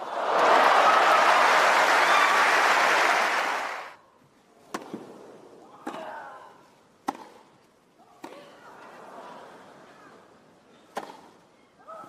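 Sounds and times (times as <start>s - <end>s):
racket striking tennis ball: 7.0s - 7.4s, 10.9s - 11.3s.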